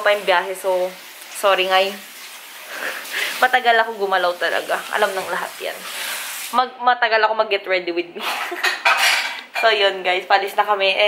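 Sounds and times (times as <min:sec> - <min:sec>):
people talking: 0:00.0 - 0:02.0, 0:03.2 - 0:05.8, 0:06.5 - 0:08.6, 0:09.6 - 0:11.0
steady hiss: 0:00.0 - 0:06.6.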